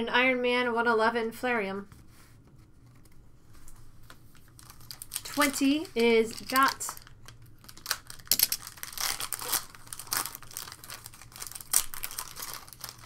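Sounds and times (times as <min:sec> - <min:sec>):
foil wrapper crinkling and tearing: 0:04.1 - 0:13.0.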